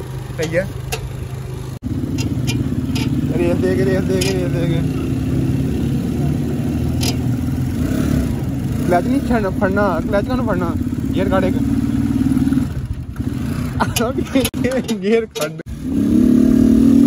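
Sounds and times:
motorcycle engine running: 0.0 - 17.0.

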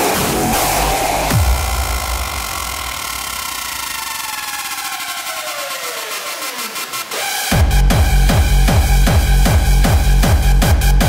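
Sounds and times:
pounding bass: 0.0 - 5.0, 7.5 - 11.0.

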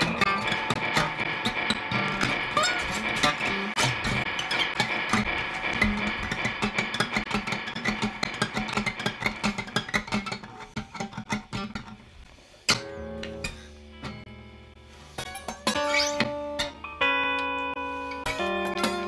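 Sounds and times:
guitars improvising: 0.0 - 19.0.

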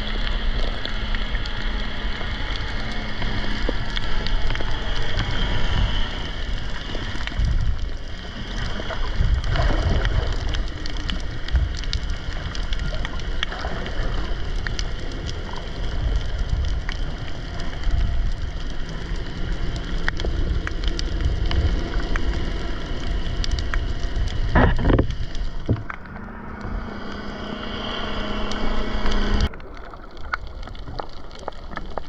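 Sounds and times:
steady low hum: 0.0 - 31.0
fine crackling clicks: 0.0 - 32.0
underwater rushing rumble: 0.0 - 32.0
water swish: 0.0 - 32.0.

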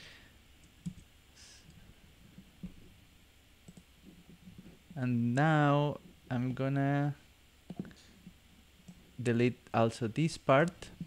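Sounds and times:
computer mouse clicks: 0.6 - 1.8, 3.6 - 3.9.

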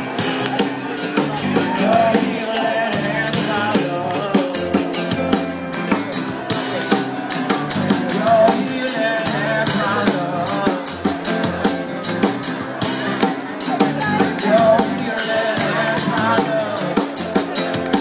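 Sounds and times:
acoustic and electric guitars: 0.0 - 18.0
drum kit beat: 0.0 - 18.0.

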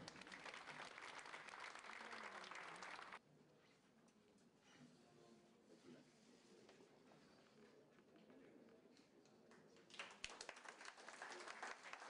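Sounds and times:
audience applauding: 0.0 - 3.2, 9.9 - 12.0.

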